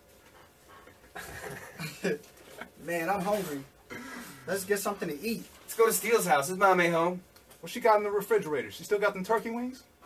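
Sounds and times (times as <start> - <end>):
person laughing: 1.1 - 2.8.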